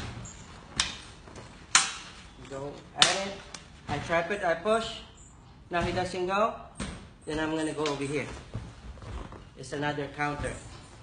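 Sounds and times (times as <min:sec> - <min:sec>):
sticks clacking together: 0:01.7 - 0:03.7.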